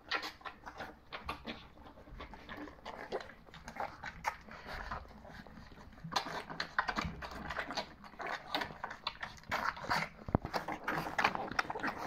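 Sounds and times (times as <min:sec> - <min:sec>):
puppies lapping and slurping: 0:00.0 - 0:12.0.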